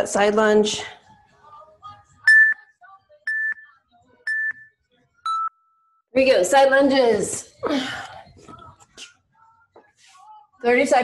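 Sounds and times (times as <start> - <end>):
timer beeping: 2.3 - 2.6, 3.3 - 3.7, 4.3 - 4.7, 5.3 - 6.0.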